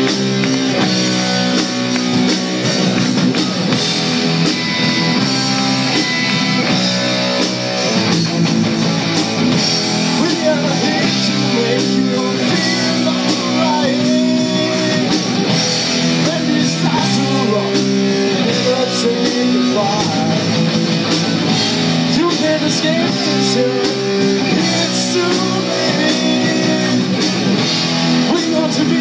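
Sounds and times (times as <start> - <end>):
rock band playing: 0.0 - 29.0.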